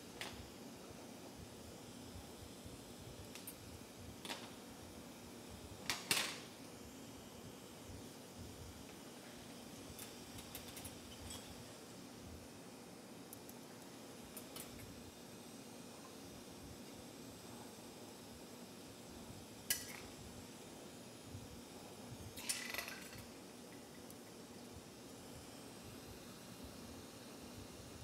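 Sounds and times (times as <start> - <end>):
low background hum: 0.0 - 28.0.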